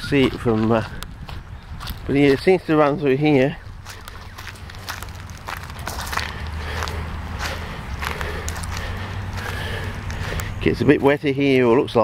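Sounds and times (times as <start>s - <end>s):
footsteps crunching through dry leaves: 0.0s - 10.9s
steady low rumble: 0.0s - 11.1s.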